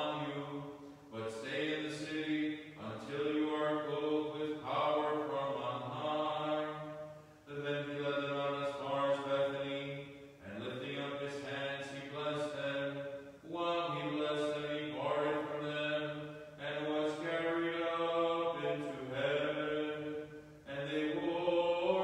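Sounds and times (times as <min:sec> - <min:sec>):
man chanting: 0:00.0 - 0:22.0.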